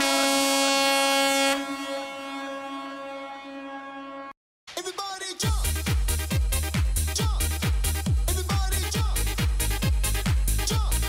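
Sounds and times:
buzzy horn-like tone: 0:00.0 - 0:04.4.

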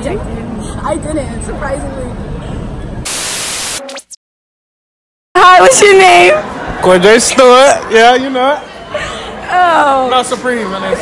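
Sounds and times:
static hiss burst: 0:03.0 - 0:04.2
crowd babble: 0:05.4 - 0:11.0.

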